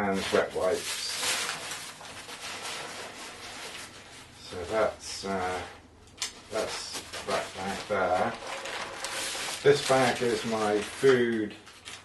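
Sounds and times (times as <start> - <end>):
fabric sack and plastic bag rustling: 0.0 - 5.7, 6.4 - 12.0.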